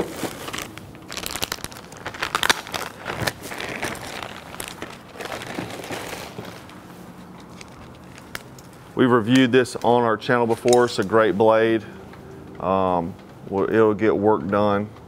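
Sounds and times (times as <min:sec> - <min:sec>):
plastic packaging crinkling: 0:00.0 - 0:11.0.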